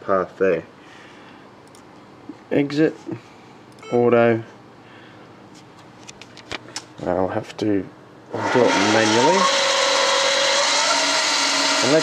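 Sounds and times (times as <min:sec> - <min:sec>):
lathe spindle whining: 0:08.4 - 0:12.0.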